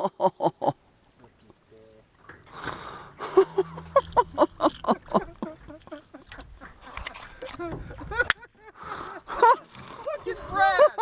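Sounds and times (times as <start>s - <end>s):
low rumble: 3.2s - 5.9s
excited human voices: 10.0s - 11.0s.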